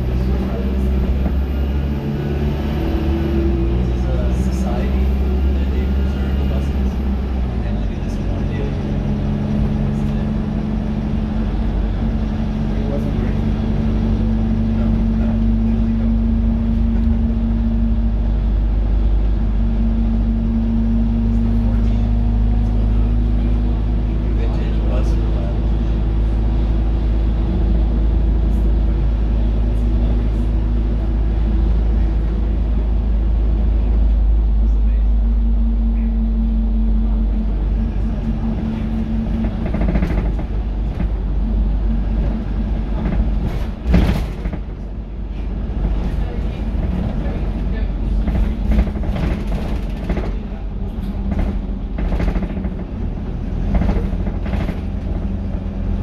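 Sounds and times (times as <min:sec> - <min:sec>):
bus engine drone: 0:00.0 - 0:56.0.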